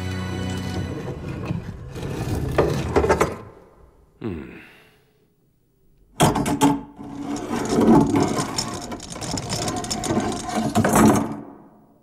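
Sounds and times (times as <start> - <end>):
door mechanism rattling: 6.2 - 11.5.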